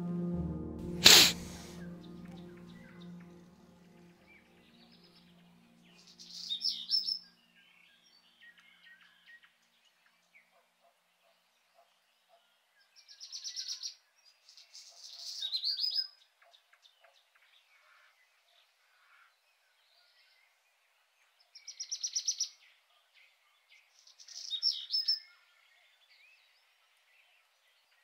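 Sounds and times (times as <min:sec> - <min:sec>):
songbirds singing: 0:01.8 - 0:28.0.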